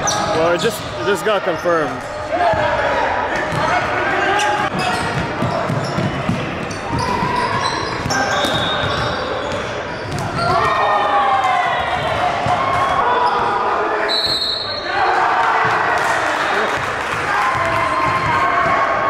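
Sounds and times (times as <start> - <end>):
basketball bouncing: 4.7 - 10.8
players shouting: 10.2 - 19.0.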